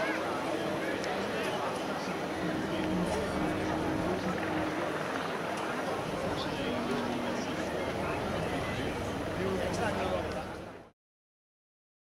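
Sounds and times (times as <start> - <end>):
murmur of people talking: 0.0 - 10.9
distant helicopter flying overhead: 0.1 - 10.9.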